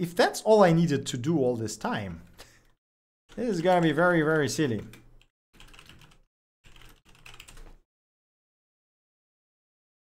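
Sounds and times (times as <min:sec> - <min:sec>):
typing on computer keyboard: 0:03.3 - 0:07.8.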